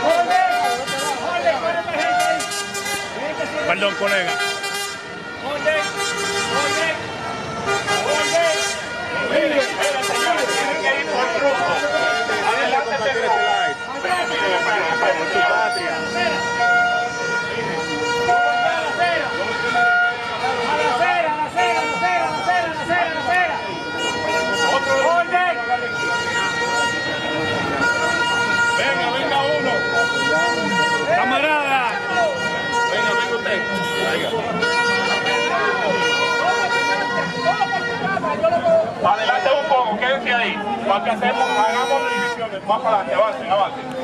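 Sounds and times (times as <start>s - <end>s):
crowd talking and shouting: 0.0s - 44.0s.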